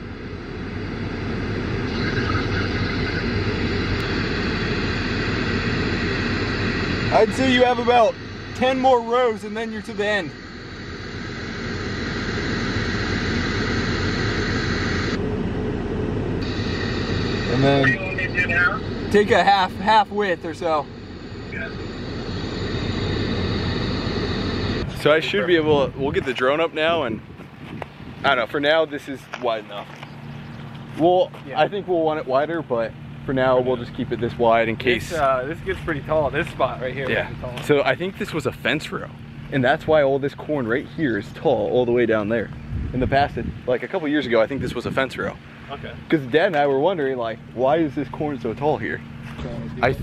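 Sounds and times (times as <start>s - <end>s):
machinery hum with whine: 0.0s - 50.0s.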